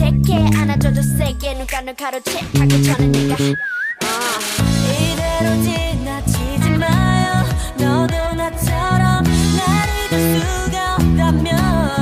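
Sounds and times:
electric bass notes: 0:00.0 - 0:01.5, 0:02.5 - 0:03.6, 0:04.6 - 0:12.0
beat: 0:00.0 - 0:12.0
whistled melody: 0:00.6 - 0:01.6, 0:02.9 - 0:04.6.

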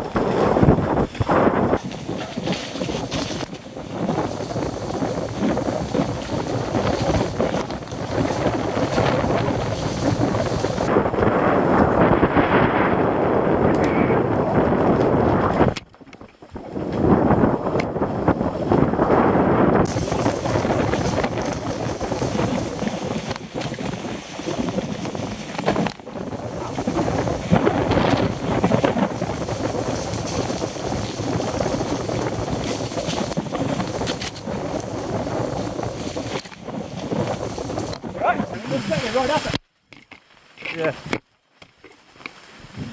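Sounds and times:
bike knocks and rattles: 0:00.0 - 0:12.1, 0:14.5 - 0:38.1
wind buffeting microphone: 0:00.0 - 0:39.6, 0:42.6 - 0:42.9.

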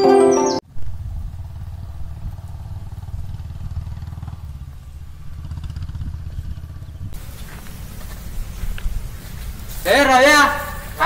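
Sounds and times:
engine rumbling steadily: 0:00.7 - 0:11.0.

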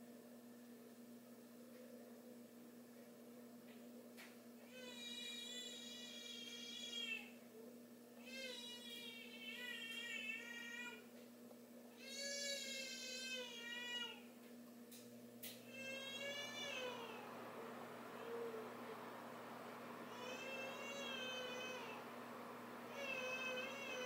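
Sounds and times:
low electrical hum: 0:00.0 - 0:24.0.

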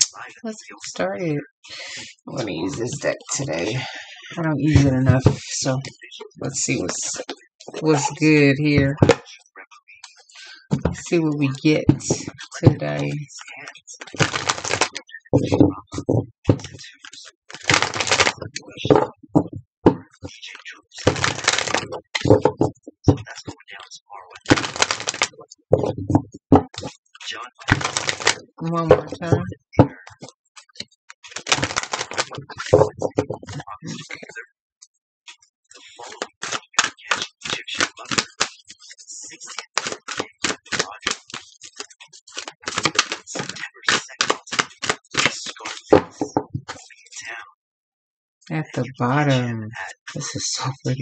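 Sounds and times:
cards being shuffled: 0:14.0 - 0:15.7, 0:17.5 - 0:19.1, 0:21.0 - 0:22.7, 0:24.5 - 0:25.9, 0:27.7 - 0:29.2, 0:31.3 - 0:33.6, 0:36.1 - 0:38.5, 0:39.5 - 0:41.5, 0:42.3 - 0:46.3.

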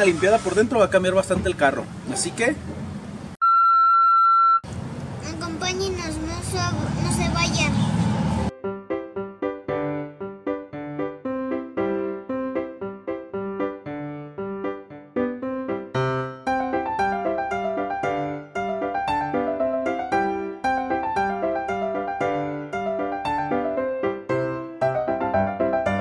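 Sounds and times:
ragtime solo piano: 0:08.9 - 0:26.0.

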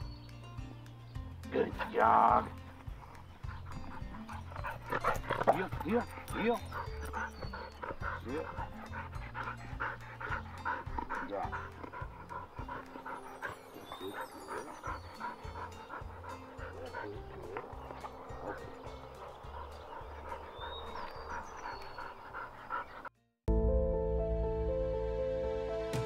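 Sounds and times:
soft background music: 0:00.0 - 0:26.0
dog panting: 0:01.6 - 0:23.1.

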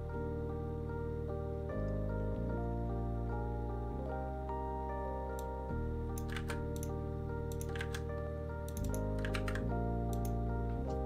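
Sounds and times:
soft background music chords: 0:00.0 - 0:11.0
computer keyboard typing: 0:06.2 - 0:08.1, 0:08.7 - 0:10.4.

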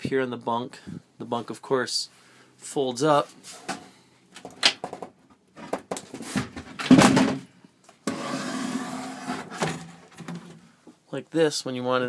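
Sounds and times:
wooden bunk knocks and clunks: 0:04.4 - 0:07.5.

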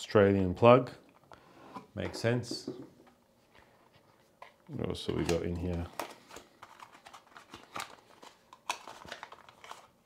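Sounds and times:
cardboard packaging rustling: 0:03.9 - 0:10.0.

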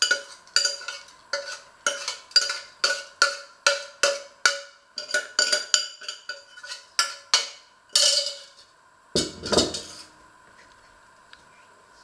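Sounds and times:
utensil knocking metal saucepan: 0:00.0 - 0:08.4.

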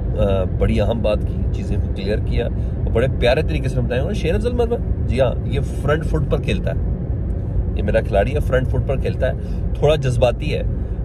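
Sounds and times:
car low rumble: 0:00.0 - 0:11.0
man talking: 0:00.1 - 0:06.8, 0:07.8 - 0:10.7.

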